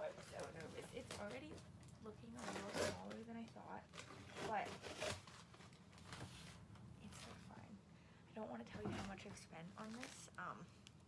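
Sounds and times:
woman's voice: 0:00.0 - 0:04.8, 0:07.0 - 0:10.7
rustling stuffing and cardboard box: 0:00.0 - 0:07.6, 0:08.8 - 0:10.4.

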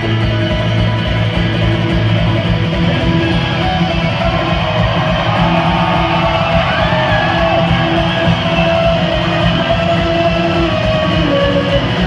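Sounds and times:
acoustic guitar over sound system: 0:00.0 - 0:12.0.

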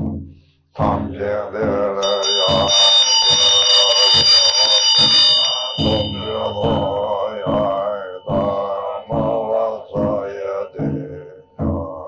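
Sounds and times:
man chanting in deep voice: 0:00.8 - 0:04.8, 0:05.6 - 0:12.0.

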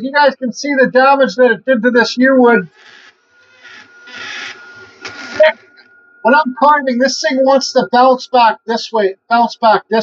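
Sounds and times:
rotary tool whining: 0:02.7 - 0:06.2.

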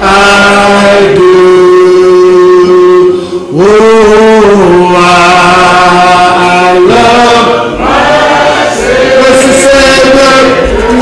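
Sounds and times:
man singing a hymn: 0:00.0 - 0:11.0.

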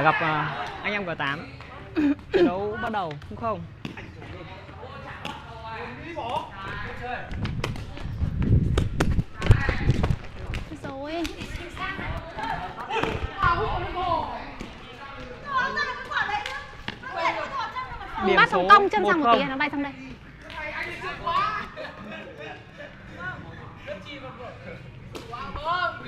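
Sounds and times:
footsteps on tiled court: 0:06.5 - 0:13.6, 0:14.5 - 0:21.8.

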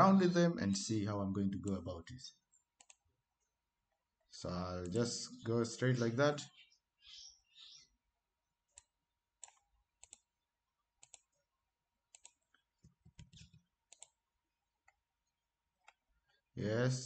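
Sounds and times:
computer mouse clicks: 0:02.5 - 0:03.0, 0:08.7 - 0:10.3, 0:11.0 - 0:11.4, 0:12.1 - 0:14.2, 0:15.8 - 0:16.0.

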